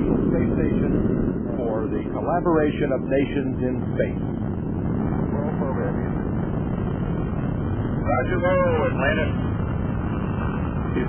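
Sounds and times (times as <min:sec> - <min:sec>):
rocket engines roaring: 0:00.0 - 0:11.0.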